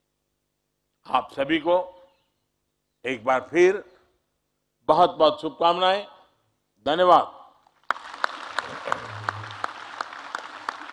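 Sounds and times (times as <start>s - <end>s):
audience applauding: 7.8s - 10.9s.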